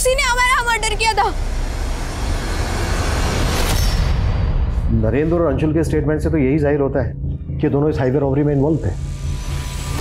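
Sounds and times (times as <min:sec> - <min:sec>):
woman's voice: 0:00.0 - 0:01.4.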